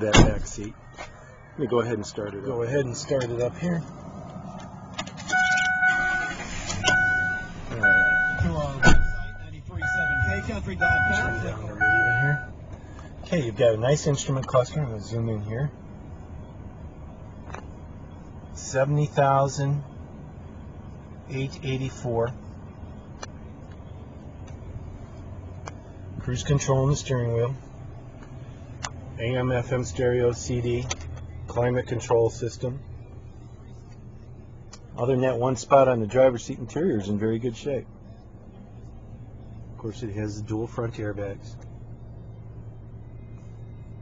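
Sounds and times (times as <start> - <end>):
dashboard warning chime: 5.3 - 12.6.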